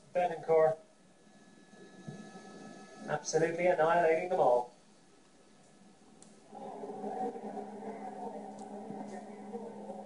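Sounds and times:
high-pitched steady tone: 0:00.0 - 0:10.0
television broadcast noise: 0:00.0 - 0:10.0.

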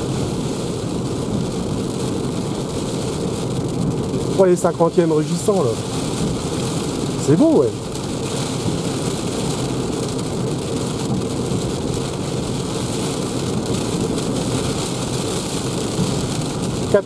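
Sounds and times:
rain on windscreen: 0:00.0 - 0:17.0
tyres hissing on wet road: 0:00.0 - 0:17.0
wind: 0:00.0 - 0:17.0.

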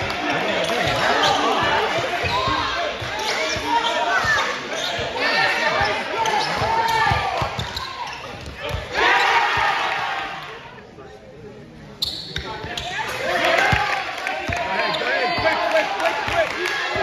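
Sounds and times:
spectators talking and shouting: 0:00.0 - 0:11.2, 0:12.1 - 0:17.0.

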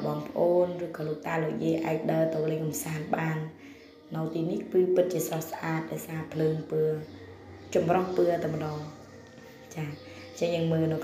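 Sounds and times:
person talking: 0:04.1 - 0:11.0.

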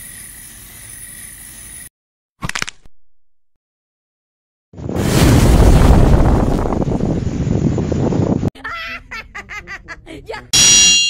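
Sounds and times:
thin high ringing tone: 0:10.6 - 0:11.0.

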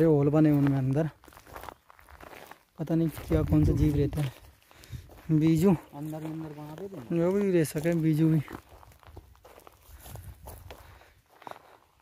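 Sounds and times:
footsteps crunching on dry leaves: 0:00.0 - 0:12.0.

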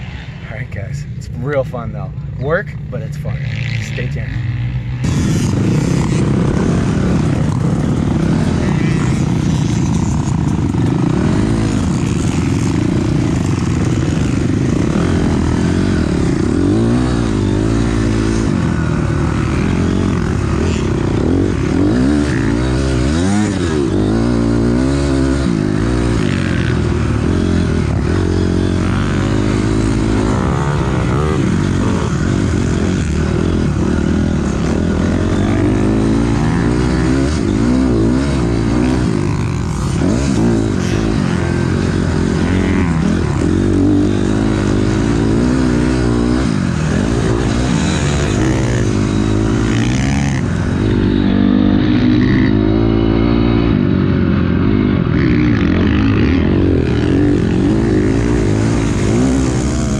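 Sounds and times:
motorcycle engine revving: 0:00.0 - 0:59.9.

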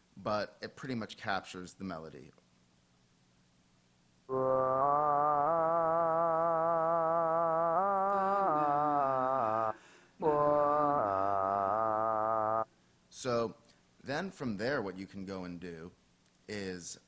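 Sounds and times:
midi copy of melody: 0:04.3 - 0:12.6
sung vocal melody with vibrato: 0:04.3 - 0:12.7.

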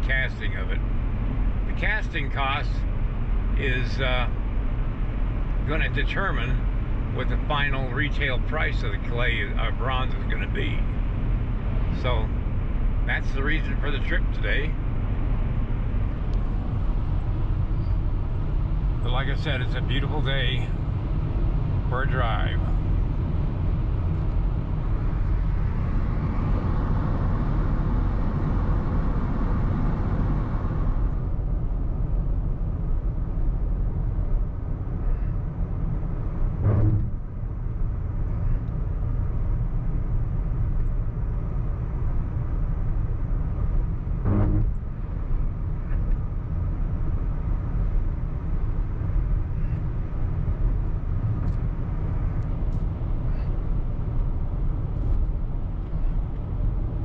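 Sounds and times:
car road and engine noise: 0:00.0 - 0:57.0.

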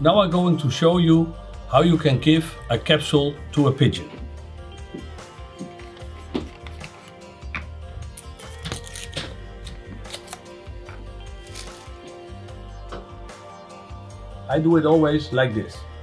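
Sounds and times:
background music: 0:00.0 - 0:16.0
foil seal crinkling: 0:05.8 - 0:07.2, 0:08.1 - 0:10.5, 0:11.4 - 0:11.9.

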